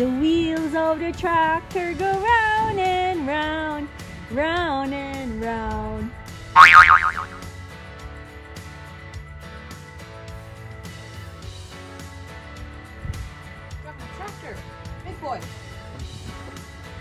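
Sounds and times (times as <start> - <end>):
short loud pitched sound: 6.6 - 7.4.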